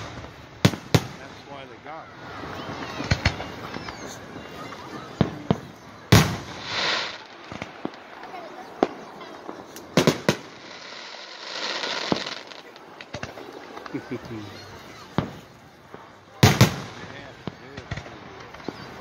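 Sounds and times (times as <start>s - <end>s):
fireworks bangs: 0.0s - 19.0s.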